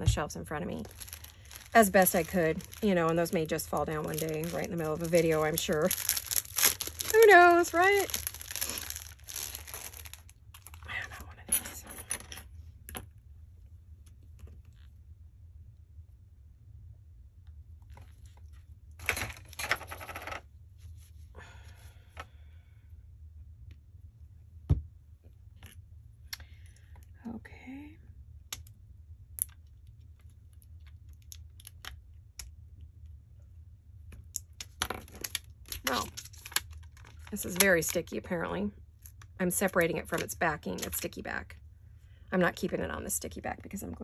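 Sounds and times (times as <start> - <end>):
steady low hum: 0.0 - 44.0
plastic sheet crinkling: 0.1 - 10.8.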